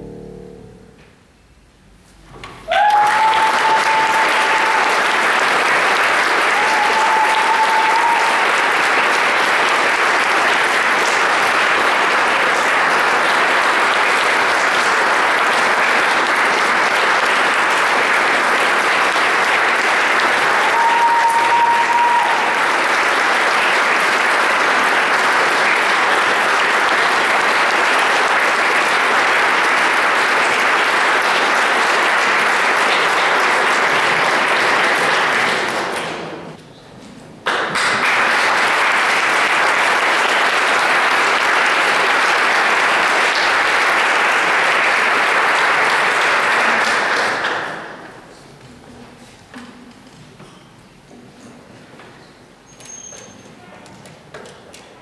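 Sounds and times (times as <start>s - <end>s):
short high tone: 0.0s - 1.0s
audience applauding: 2.7s - 36.6s, 37.4s - 48.5s.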